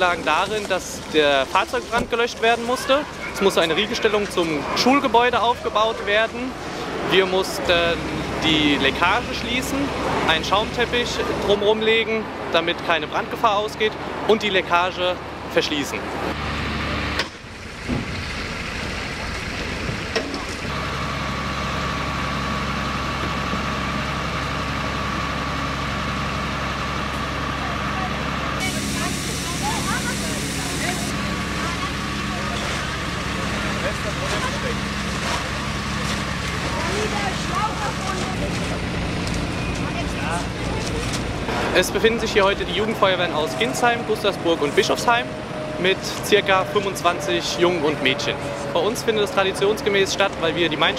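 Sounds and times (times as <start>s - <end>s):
fire engine engine hum: 0.0s - 50.9s
faint voices: 27.5s - 50.9s
hiss: 28.6s - 31.1s
steady whine: 28.6s - 46.0s.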